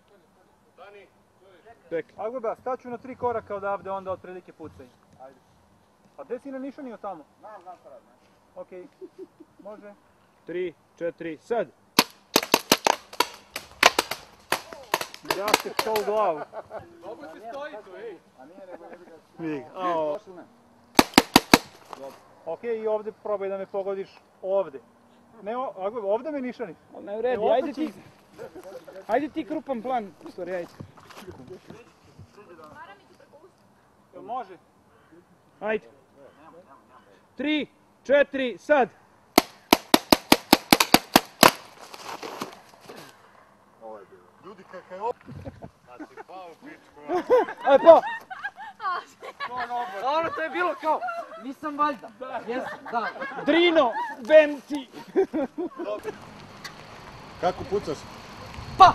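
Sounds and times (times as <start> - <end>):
paintball marker pops: 12.0 - 16.1, 21.0 - 22.0, 39.4 - 41.7.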